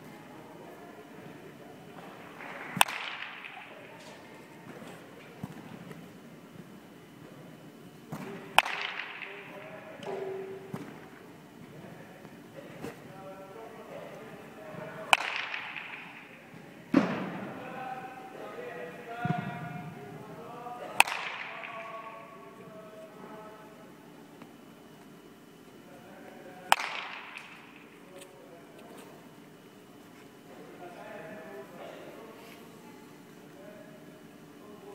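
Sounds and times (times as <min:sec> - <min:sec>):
baseball bat hitting ball: 0:02.4 - 0:04.2, 0:08.1 - 0:11.0, 0:15.1 - 0:16.4, 0:21.0 - 0:22.2, 0:26.7 - 0:27.9.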